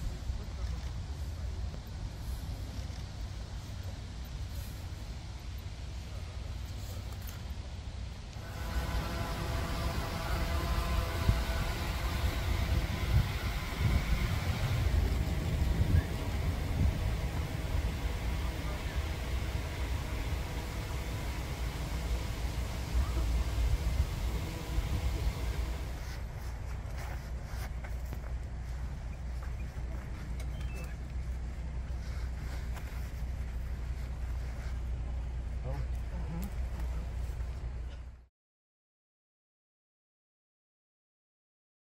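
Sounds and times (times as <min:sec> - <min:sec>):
faint steady hum: 0:00.0 - 0:38.3
vehicle engine idling: 0:08.3 - 0:38.2
faint voices: 0:08.4 - 0:26.5
wind buffeting microphone: 0:08.7 - 0:26.0.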